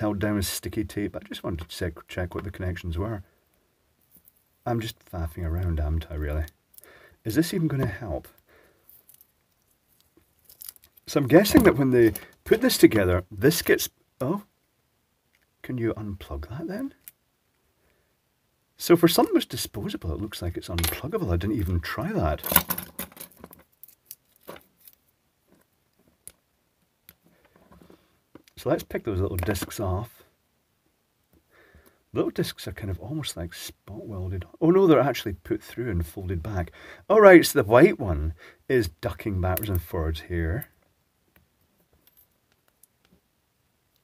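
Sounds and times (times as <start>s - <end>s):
faint clicks and taps of plastic parts: 22.6s - 28.6s, 40.6s - 43.3s.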